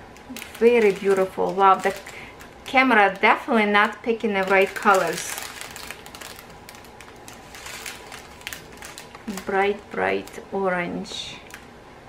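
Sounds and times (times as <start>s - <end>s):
plastic bags crinkling: 0.1s - 10.5s, 11.1s - 11.7s.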